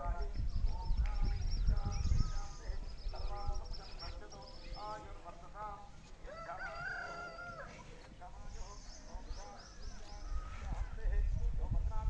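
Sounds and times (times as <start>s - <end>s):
rooster crowing: 6.2s - 7.8s.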